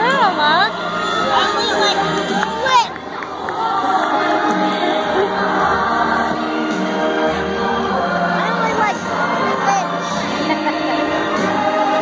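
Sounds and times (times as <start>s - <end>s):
choir music over sound system: 0.0s - 12.0s.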